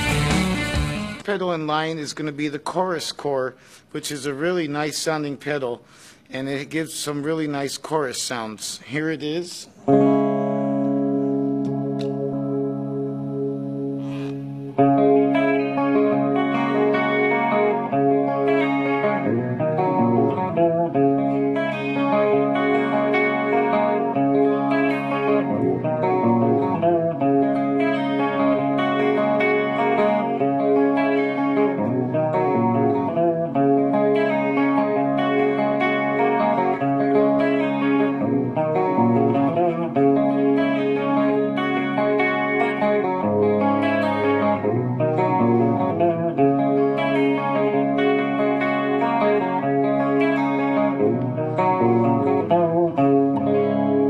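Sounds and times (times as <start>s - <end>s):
electric guitar with chorus effect: 0.0s - 7.8s, 9.6s - 54.0s.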